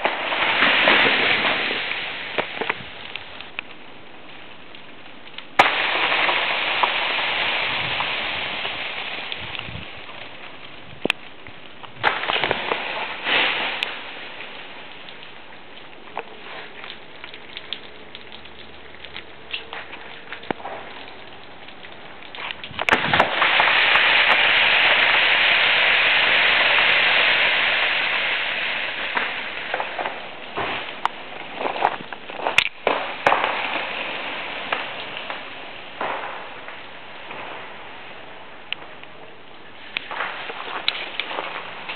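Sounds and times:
freezing rain hissing: 0:00.0 - 0:41.9
sharp cracks: 0:00.0 - 0:41.9
faint ticks of drops: 0:02.3 - 0:05.7, 0:13.6 - 0:23.0.

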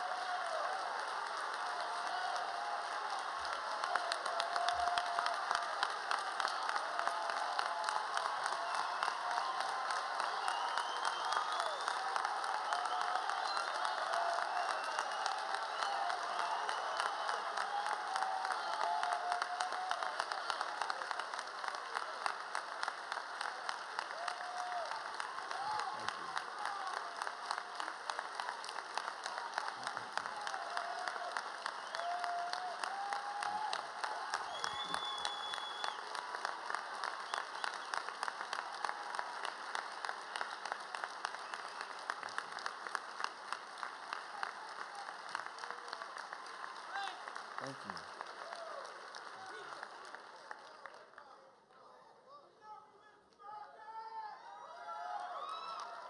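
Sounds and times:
audience applause: 0:00.0 - 0:52.0, 0:53.4 - 0:56.0.

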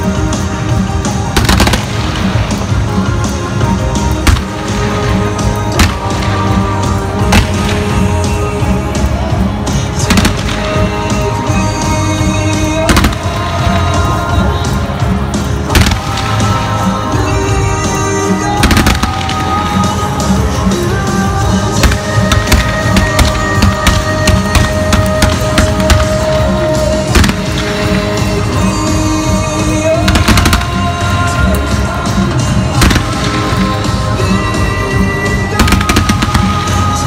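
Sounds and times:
fireworks crackling: 0:00.0 - 0:37.0
loud music: 0:00.0 - 0:37.0
fireworks bangs: 0:01.2 - 0:08.7, 0:09.9 - 0:37.0.

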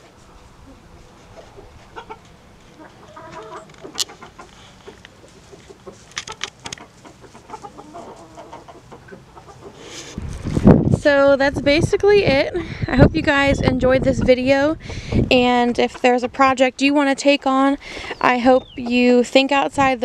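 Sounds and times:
hens clucking: 0:00.6 - 0:10.2, 0:13.8 - 0:16.6, 0:17.8 - 0:19.6.

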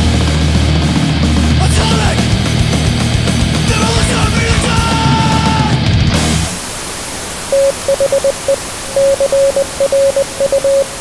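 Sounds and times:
thrash metal song: 0:00.0 - 0:06.6
static hiss: 0:06.2 - 0:11.0
short electronic beeps: 0:07.5 - 0:11.0.

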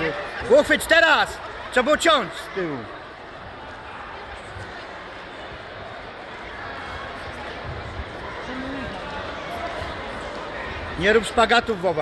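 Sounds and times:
crowd chatter murmur: 0:00.0 - 0:12.0.

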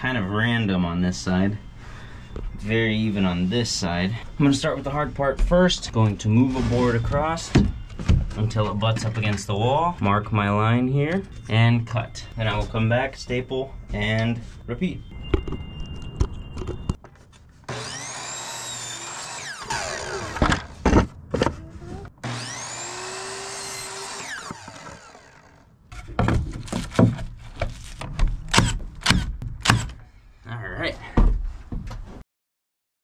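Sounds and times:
miter saw cutting wood: 0:17.7 - 0:20.7, 0:22.2 - 0:25.7.

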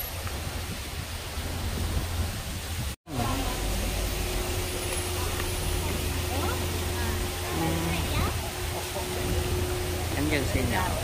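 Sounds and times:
idling car engines: 0:03.1 - 0:11.0
steady hum: 0:03.1 - 0:11.0.

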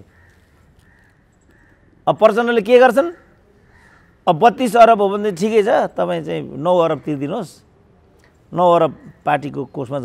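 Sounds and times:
distant bird calls: 0:00.0 - 0:10.0.

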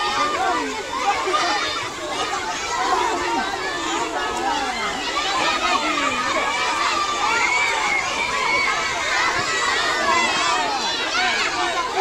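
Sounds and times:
crowd of children shouting: 0:00.0 - 0:12.0.

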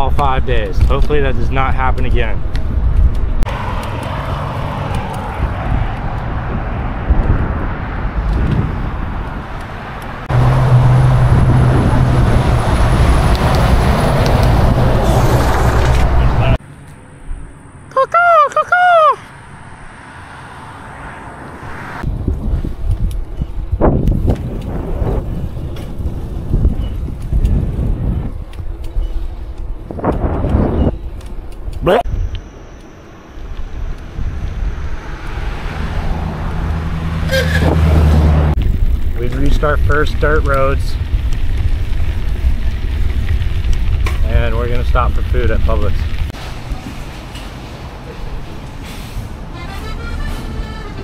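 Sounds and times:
wind and road noise: 0:00.0 - 0:51.0.

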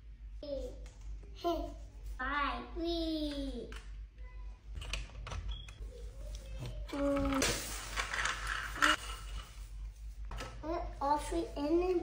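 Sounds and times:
child speaking: 0:01.4 - 0:04.6, 0:05.8 - 0:07.5, 0:10.6 - 0:12.0.

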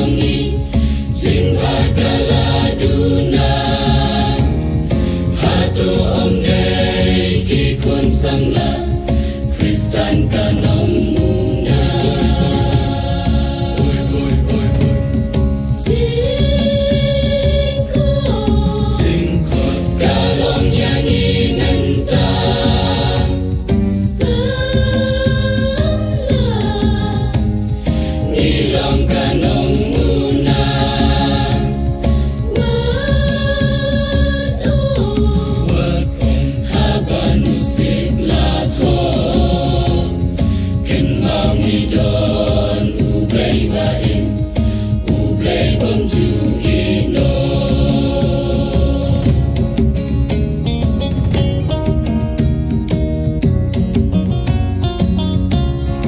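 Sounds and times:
choir singing chords: 0:00.0 - 0:50.0
strong bass: 0:00.0 - 0:56.0.

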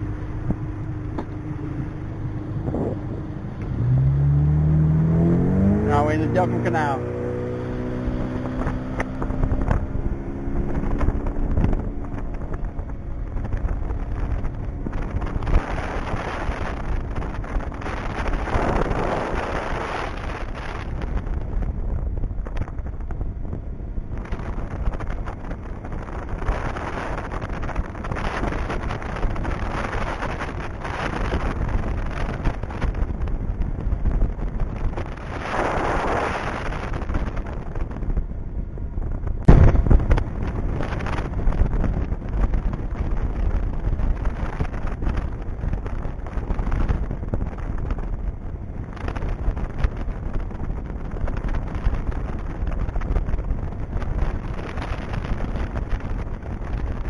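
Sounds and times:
boat motor running: 0:00.0 - 0:57.0
hull on water: 0:00.0 - 0:57.0
wind on microphone: 0:00.0 - 0:57.0.

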